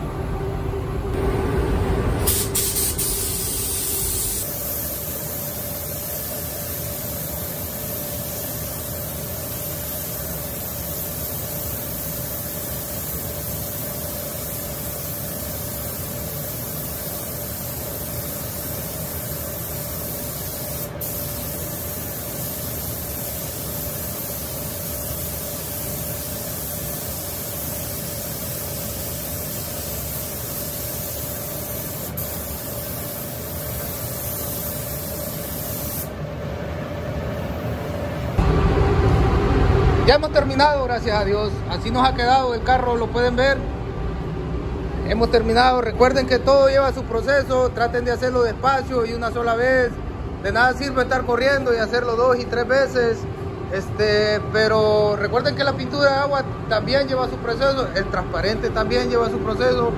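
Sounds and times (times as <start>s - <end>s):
steady hum: 0.0s - 59.9s
spray gun hissing: 2.2s - 36.1s.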